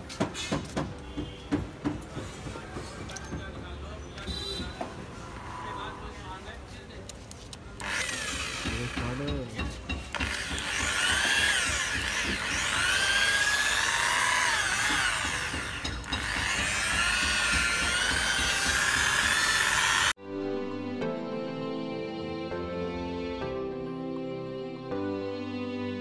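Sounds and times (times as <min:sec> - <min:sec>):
electric polisher motor whining: 0:07.8 - 0:09.4, 0:10.2 - 0:20.2
music: 0:20.2 - 0:26.0.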